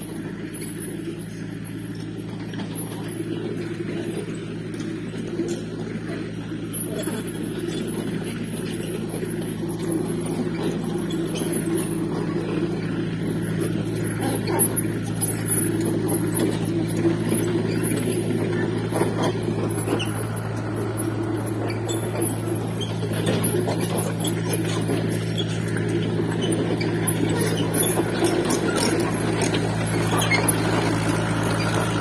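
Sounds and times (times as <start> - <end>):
diesel engine running: 0.0 - 32.0.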